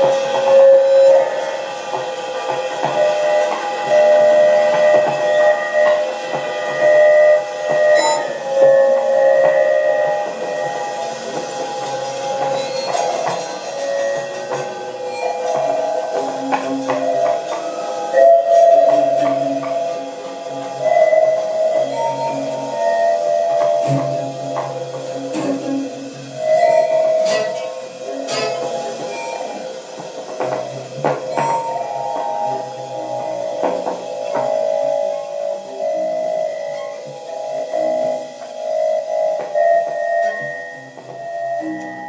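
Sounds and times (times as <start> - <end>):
sharp percussive clicks and strikes: 0.0 - 42.0.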